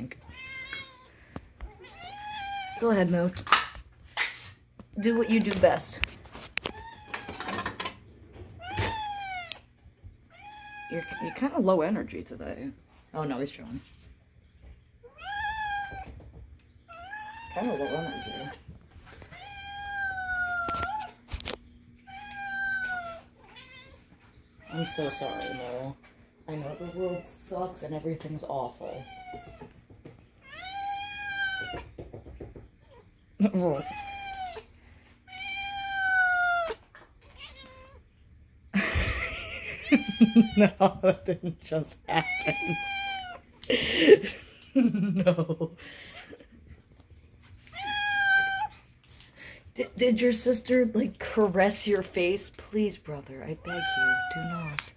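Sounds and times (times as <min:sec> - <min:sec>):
cat meowing: 0:00.2 - 0:02.8, 0:08.6 - 0:09.7, 0:10.3 - 0:11.4, 0:15.0 - 0:16.2, 0:16.8 - 0:18.6, 0:19.2 - 0:21.2, 0:22.1 - 0:24.0, 0:30.4 - 0:31.9, 0:33.7 - 0:34.7, 0:35.3 - 0:38.0, 0:42.2 - 0:43.4, 0:47.6 - 0:48.8, 0:53.6 - 0:54.8.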